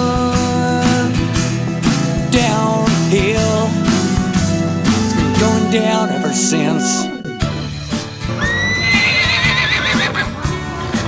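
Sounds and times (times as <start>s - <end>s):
music with a steady beat: 0.0s - 11.0s
horse whinnying: 8.4s - 10.4s.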